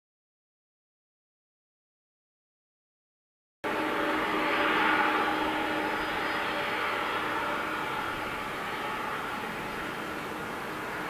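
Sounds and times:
jet engines running: 3.6 - 11.0.

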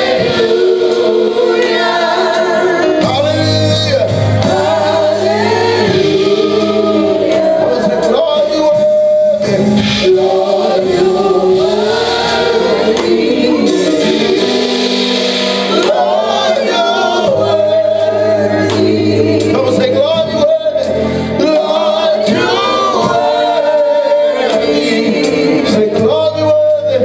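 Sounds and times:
women backing singers: 0.0 - 3.5, 4.3 - 26.6
man singing lead: 7.3 - 11.2, 19.4 - 27.0.

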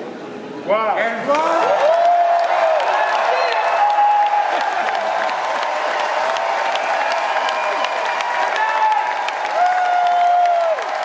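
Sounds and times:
audience applauding: 1.3 - 11.0.

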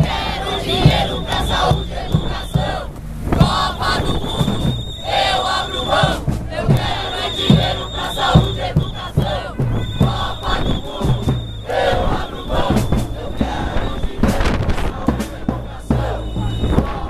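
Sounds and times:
crowd chanting and shouting: 0.0 - 17.0
long high steady tone: 0.0 - 17.0
steady drum beat: 0.0 - 17.0.

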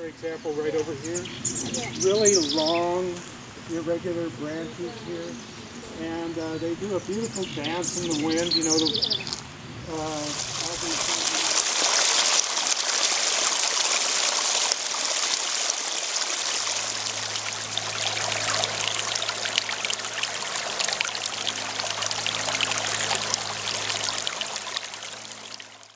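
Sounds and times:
stream running over rocks: 0.2 - 25.9.

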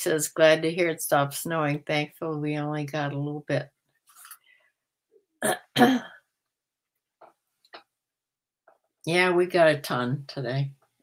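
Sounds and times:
woman clearing her throat: 5.4 - 6.2.

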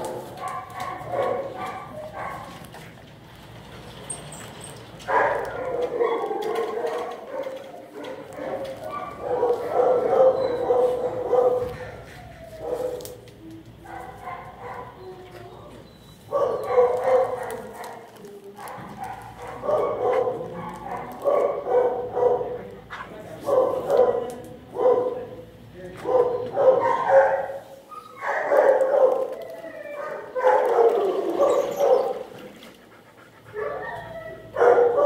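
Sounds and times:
dogs barking: 0.0 - 2.8, 5.0 - 35.0.

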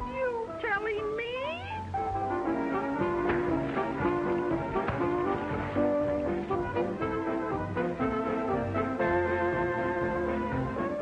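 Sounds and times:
orchestral music: 1.8 - 11.0.

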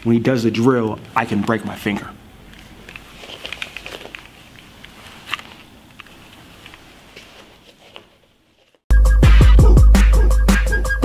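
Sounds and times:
clothing rustling: 1.0 - 8.9.

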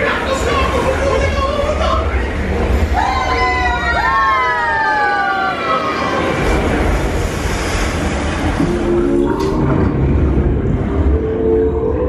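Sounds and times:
rushing noise: 0.0 - 12.0.

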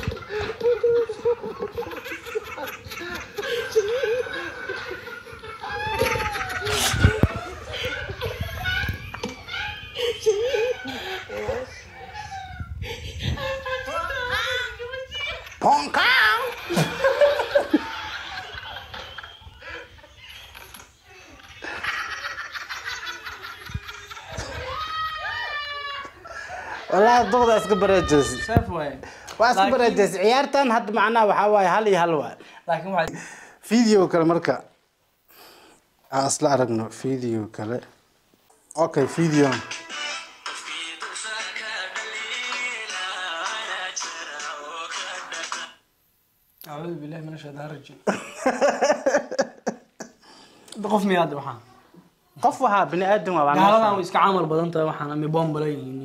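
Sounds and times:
people laughing: 0.0 - 28.6, 48.1 - 50.2
music with singing voice: 39.2 - 45.8.

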